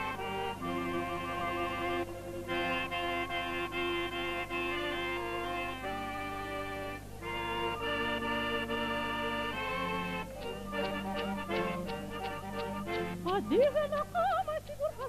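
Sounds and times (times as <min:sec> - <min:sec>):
accordion melody: 0:00.0 - 0:14.5
bowed fiddles: 0:00.0 - 0:15.0.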